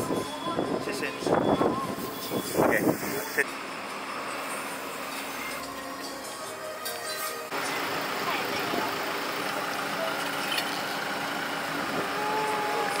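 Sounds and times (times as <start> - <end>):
steady traffic noise: 0.0 - 13.0
indistinct voices: 11.9 - 13.0.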